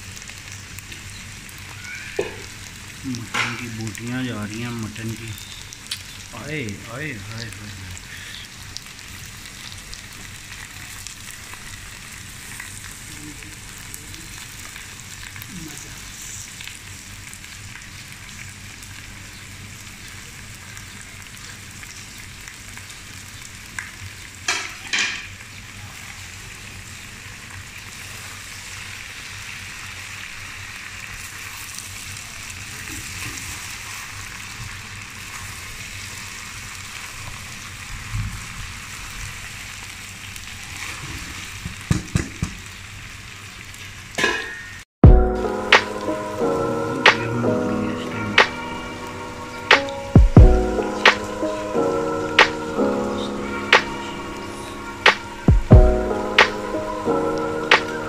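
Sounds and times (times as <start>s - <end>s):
food sizzling in a wok: 0.0s - 58.0s.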